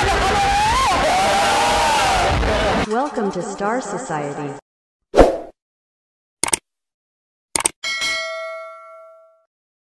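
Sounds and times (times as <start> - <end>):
bell ding: 7.8 - 9.5.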